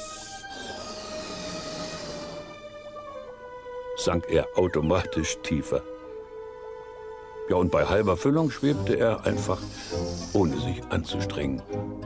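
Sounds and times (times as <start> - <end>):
cartoon air hissing: 0.0 - 2.7, 8.0 - 10.7.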